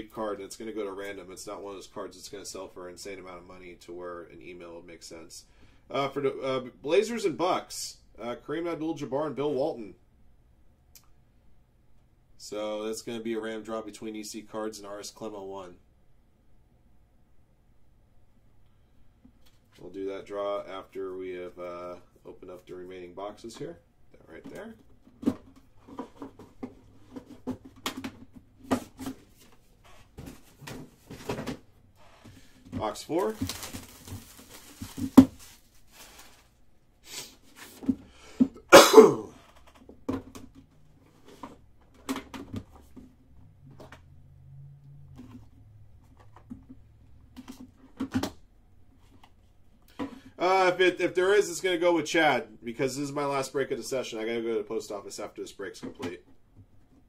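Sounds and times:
man talking: 0.0 - 10.0, 12.4 - 15.8, 19.8 - 24.8, 32.7 - 33.8, 50.4 - 56.3
cardboard packaging clicks and rustles: 25.2 - 36.6.

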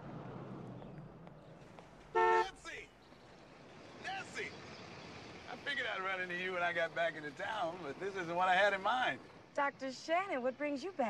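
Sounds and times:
car horn toot: 2.1 - 2.8.

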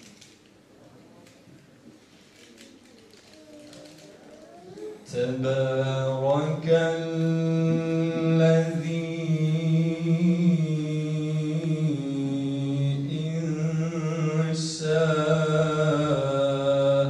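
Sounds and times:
man chanting: 5.0 - 17.0.

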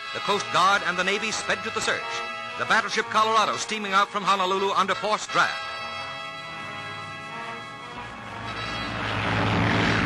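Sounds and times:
plane piston engine at full power: 0.4 - 10.0.

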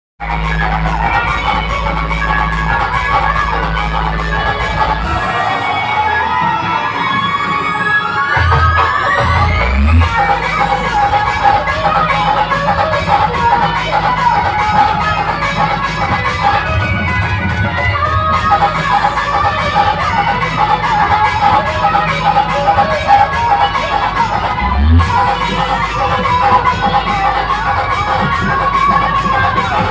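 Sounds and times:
electronic dance music: 0.2 - 29.9
rising sweep: 0.4 - 12.4.

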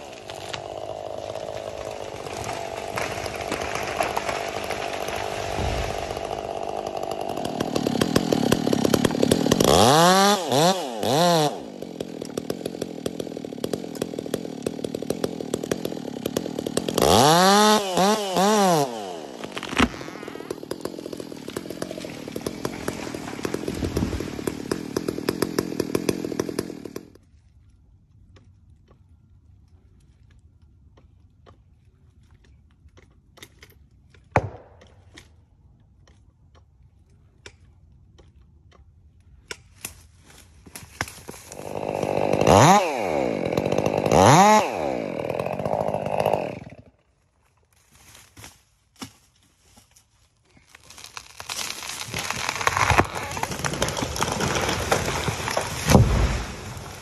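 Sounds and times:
wood snapping and cracking: 0.0 - 26.8, 50.5 - 57.0
chainsaw idling: 0.0 - 27.2, 41.4 - 46.9, 52.3 - 57.0
tree falling thud: 2.0 - 8.4, 21.1 - 24.6, 51.4 - 57.0.

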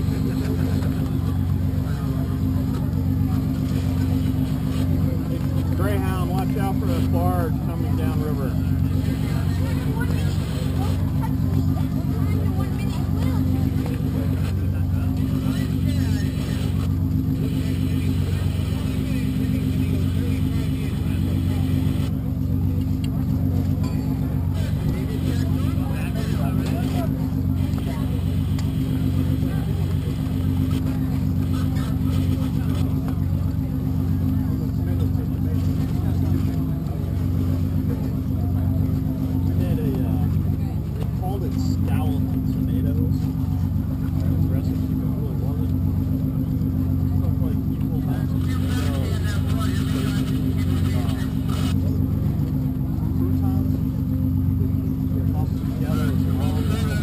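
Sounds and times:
engine droning: 0.0 - 57.0
faint indistinct voices: 0.0 - 57.0.

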